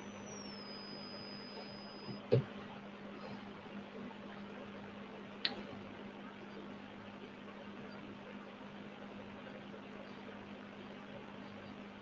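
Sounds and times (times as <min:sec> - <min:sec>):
thin high whistle: 0:00.0 - 0:02.2
steady low hum: 0:00.0 - 0:12.0.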